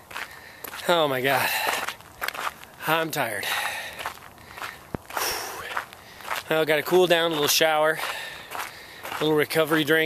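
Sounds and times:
runner footsteps on dirt road: 0.0 - 10.0.

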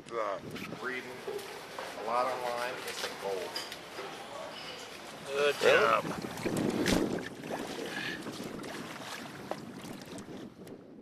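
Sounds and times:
choppy water along boat: 0.0 - 11.0
wind on microphone: 0.2 - 1.2, 5.0 - 11.0.

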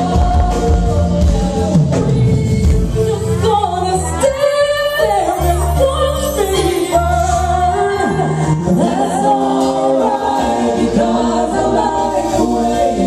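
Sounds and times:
backing vocalists singing: 0.0 - 13.0
bass guitar: 0.0 - 13.0
drums: 0.0 - 13.0
female lead singer: 0.0 - 13.0
keyboard: 0.0 - 13.0.

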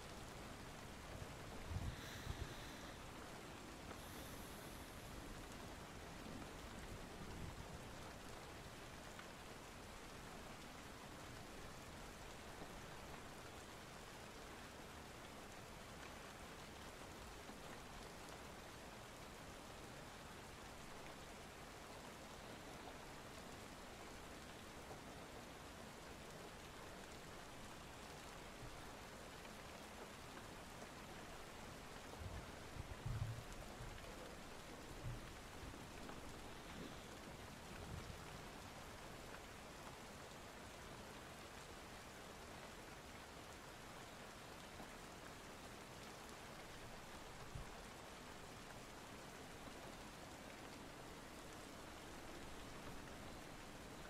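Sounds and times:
steady rain: 0.0 - 54.0
soft low thumps: 32.2 - 34.0.

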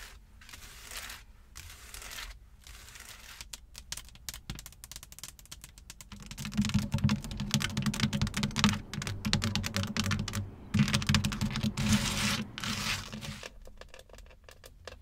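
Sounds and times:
taps on window glass: 3.9 - 15.0
fingernails tapping on plastic: 4.0 - 15.0.

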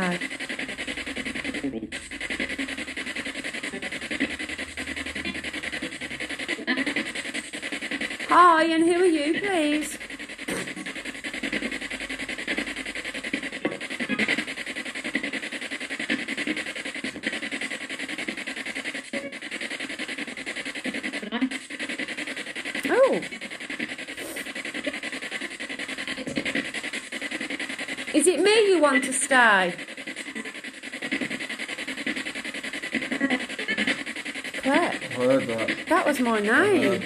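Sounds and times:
chopped voice fragments: 0.0 - 15.4, 22.5 - 37.0
radio static: 0.0 - 37.0.

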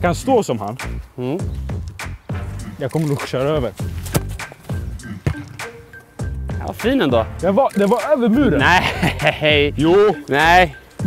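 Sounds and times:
hip-hop music: 0.0 - 11.0
football kicked thud: 4.0 - 5.6.

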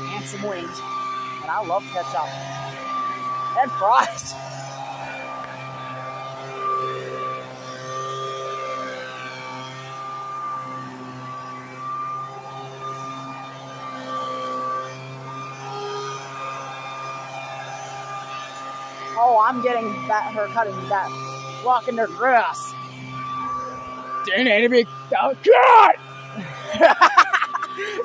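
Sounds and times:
gas leaf blower running: 0.0 - 28.0.

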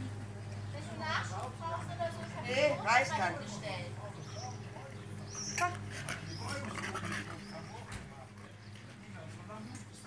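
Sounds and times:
faint voices talking: 0.0 - 10.0.

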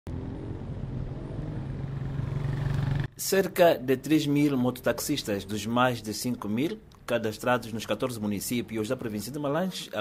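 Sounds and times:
small motorcycle engine running: 0.1 - 3.1.

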